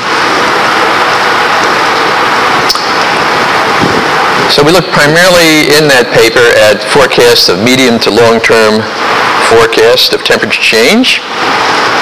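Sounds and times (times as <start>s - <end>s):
loud static hiss: 0.0s - 12.0s.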